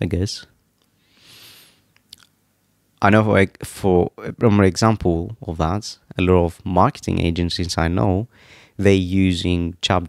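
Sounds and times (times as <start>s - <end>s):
soft breath into microphone: 1.0s - 1.9s, 8.3s - 8.8s.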